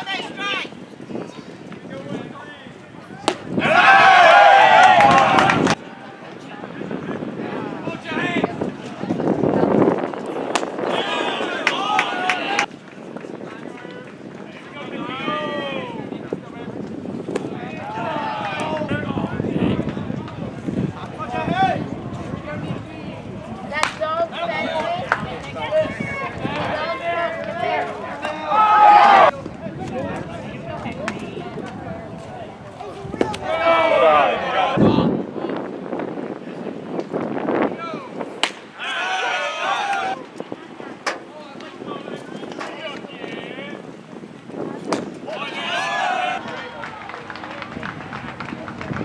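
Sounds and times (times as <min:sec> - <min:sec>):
outdoor background noise: 0:00.0 - 0:49.0
people chattering and calling out: 0:00.0 - 0:49.0.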